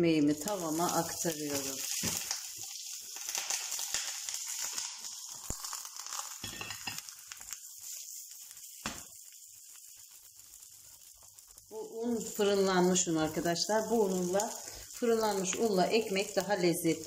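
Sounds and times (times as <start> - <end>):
oil sizzling in a frying pan: 0.0 - 17.0.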